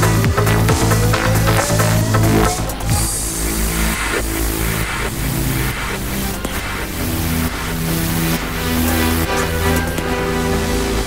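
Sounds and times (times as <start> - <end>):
rising synth tone: 0.0 - 11.0
techno music with bass line: 0.0 - 11.0
wash of hiss: 0.0 - 11.0.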